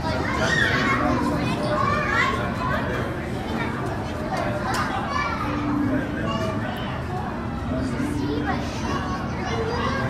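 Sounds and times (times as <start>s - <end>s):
children's voices chattering: 0.0s - 10.0s.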